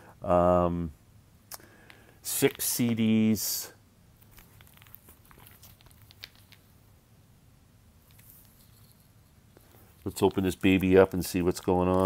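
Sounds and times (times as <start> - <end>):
packaging rustling and clicking: 4.2 - 6.7.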